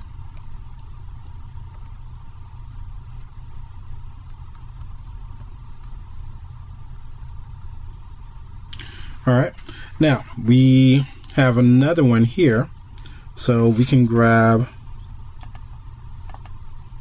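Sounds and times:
low electrical hum: 0.0 - 17.0
keyboard keys clicking: 2.7 - 6.0, 15.4 - 16.6.

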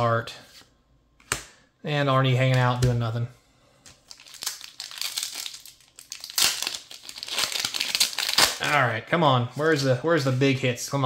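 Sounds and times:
foil wrapper crinkling: 4.0 - 8.7
foil pack torn open: 4.1 - 8.6.

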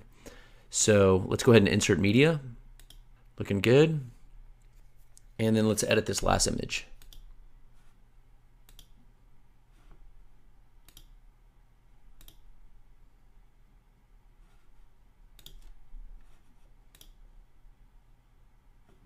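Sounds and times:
low steady hum: 0.0 - 19.0
computer mouse clicks: 2.8 - 3.0, 7.0 - 7.3, 8.6 - 9.0, 10.8 - 11.2, 12.2 - 12.5, 15.3 - 15.8, 16.9 - 17.2.

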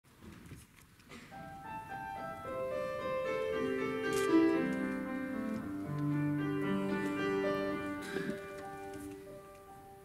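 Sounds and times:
faint rustling: 0.2 - 9.8
held piano notes: 1.4 - 10.0.

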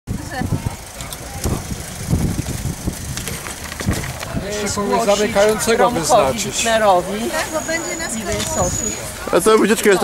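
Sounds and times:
low rumbling street background: 0.1 - 10.0
scattered voices: 0.1 - 10.0
bicycle knocks and clicks: 2.2 - 4.4.

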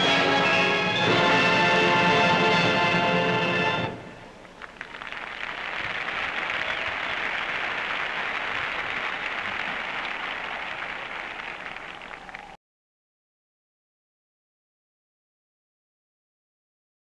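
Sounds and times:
stadium crowd applauding: 4.4 - 12.6.

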